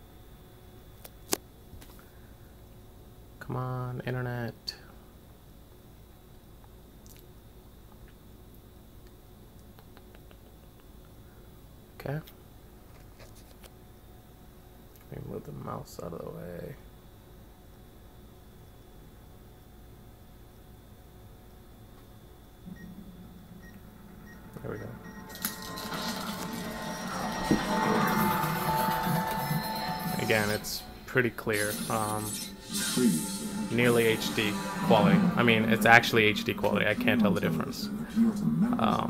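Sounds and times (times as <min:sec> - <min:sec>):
low steady hum: 0:00.0 - 0:39.0
low hum: 0:21.4 - 0:39.0.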